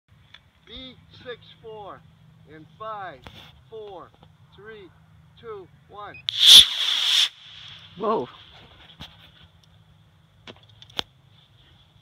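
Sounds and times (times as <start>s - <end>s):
model rocket motor whoosh and hiss: 6.3s - 8.2s.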